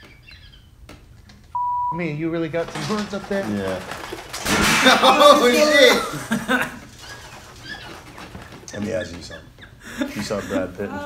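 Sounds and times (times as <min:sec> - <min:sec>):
high-pitched censor bleep: 0:01.6 - 0:02.0.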